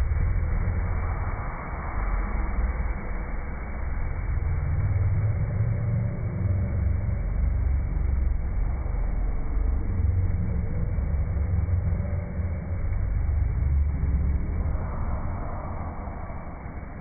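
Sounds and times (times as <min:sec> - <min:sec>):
wave machine low rumble: 0:00.0 - 0:17.0.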